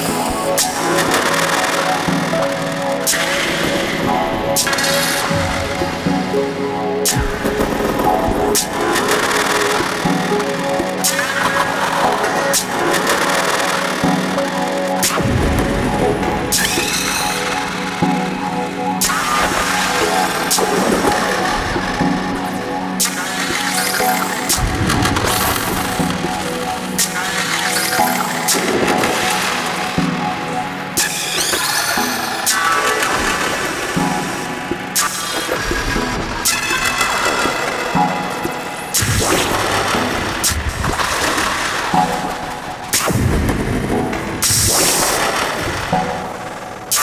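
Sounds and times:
sustained synthesizer drones: 0.0s - 47.0s.

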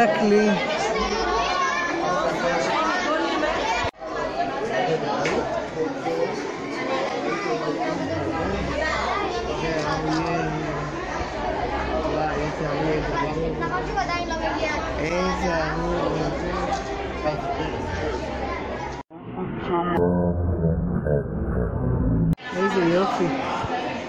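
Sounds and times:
children chattering in a hall: 0.0s - 19.4s, 22.4s - 24.0s.

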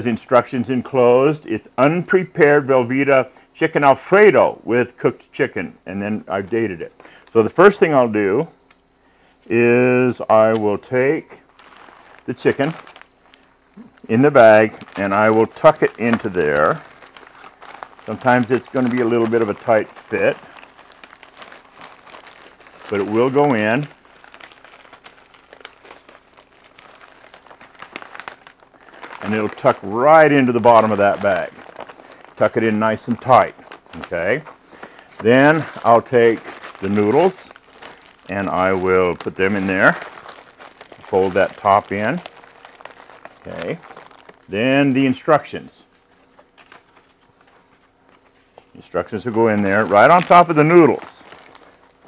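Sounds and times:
plastic and foil packaging crinkling: 6.2s - 52.0s
paper rustling: 11.5s - 52.0s.

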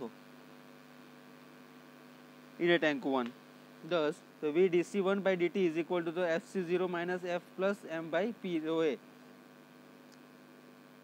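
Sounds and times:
faint electrical hum: 0.0s - 11.0s.

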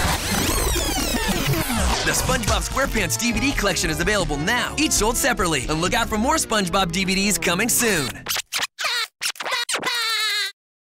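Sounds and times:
record scratch sound effect: 0.0s - 10.0s.

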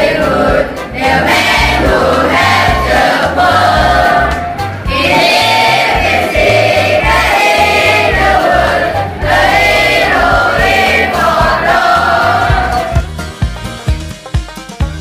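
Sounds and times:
children singing in unison: 0.0s - 13.0s
backing track with bass beat: 0.0s - 15.0s
plucked instrumental notes: 0.5s - 15.0s.

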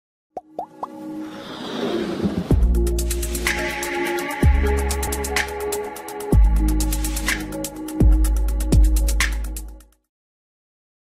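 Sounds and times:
plops rising in pitch: 0.4s - 1.0s
whoosh: 1.2s - 3.6s.

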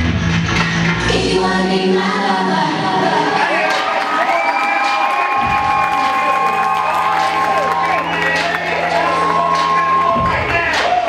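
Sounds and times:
audience cheering and screaming: 3.1s - 11.0s.

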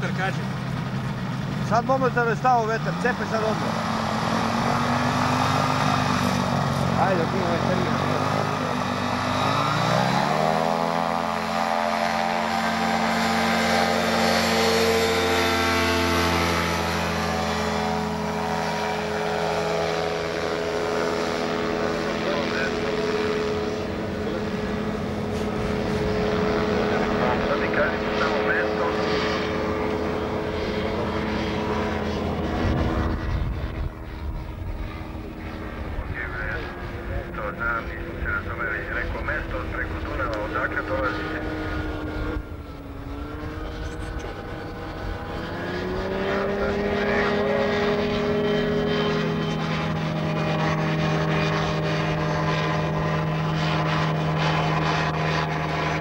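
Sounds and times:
propeller engine droning: 0.0s - 56.0s.

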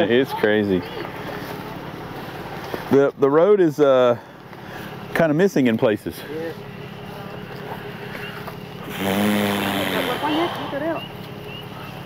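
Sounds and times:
people's voices: 0.0s - 12.0s
vehicle engine idling: 0.0s - 12.0s.

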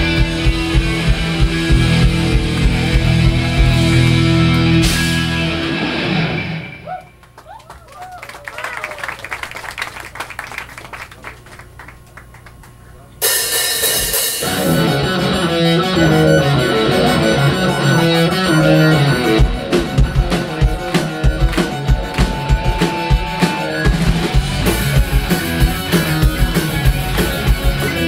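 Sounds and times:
live rock band playing: 0.0s - 6.9s, 13.2s - 28.0s
crowd clapping: 1.8s - 4.8s, 6.9s - 13.0s, 19.7s - 28.0s.

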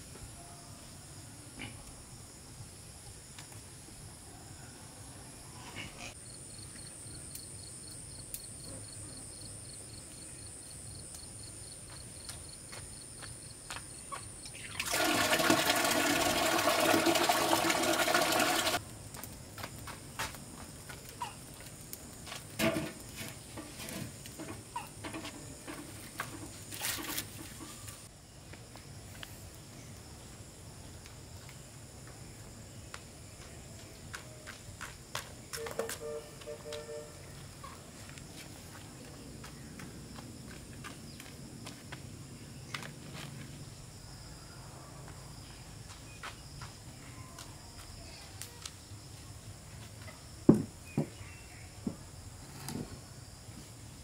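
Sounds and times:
water gushing: 14.5s - 18.8s
fire crackling: 14.8s - 29.6s.

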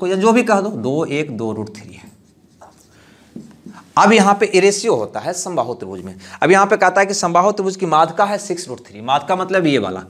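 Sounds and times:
marker writing on whiteboard: 1.7s - 4.3s.

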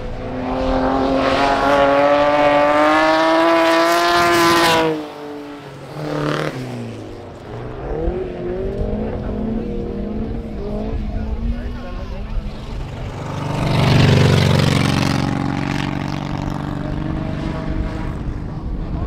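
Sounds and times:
race car engines revving: 0.0s - 19.0s.

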